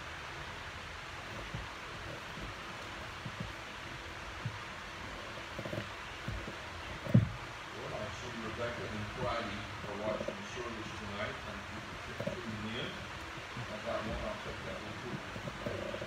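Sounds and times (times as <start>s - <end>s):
electric fans hissing: 0.0s - 16.0s
soft thumps: 1.3s - 3.7s, 4.3s - 7.6s.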